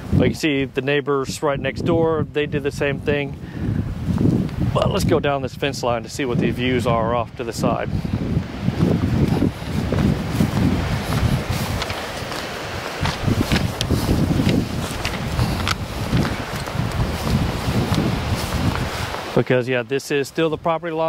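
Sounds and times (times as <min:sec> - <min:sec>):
wind noise on microphone: 0:00.0 - 0:19.6
footsteps through dry grass: 0:07.8 - 0:19.4.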